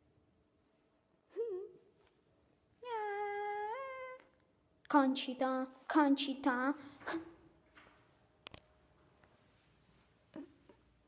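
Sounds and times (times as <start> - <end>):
boy speaking: 4.9 - 7.3.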